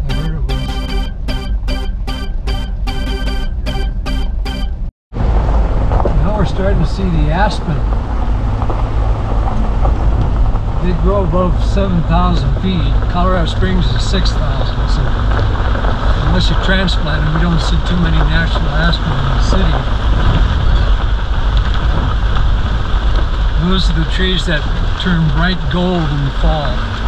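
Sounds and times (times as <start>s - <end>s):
vehicle engine rumble: 4.8s - 27.0s.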